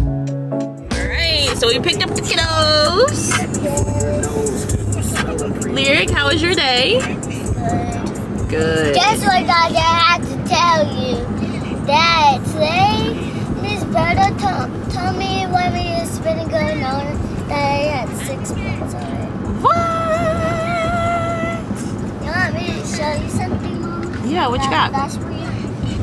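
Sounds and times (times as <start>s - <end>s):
steady low hum: 1.0s - 26.0s
child singing: 3.1s - 5.8s, 7.4s - 8.2s, 11.9s - 24.3s.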